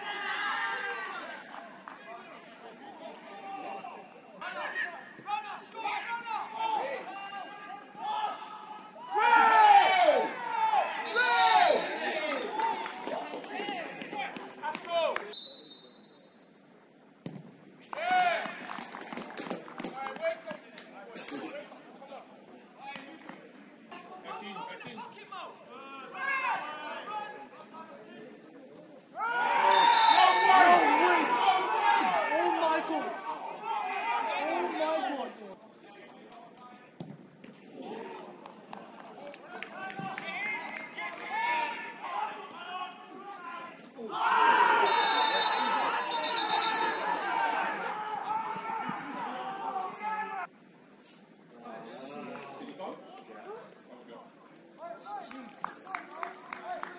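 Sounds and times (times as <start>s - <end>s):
players shouting and cheering: 0.0s - 15.3s, 17.9s - 18.8s, 23.9s - 27.9s, 29.1s - 36.2s, 37.7s - 50.6s.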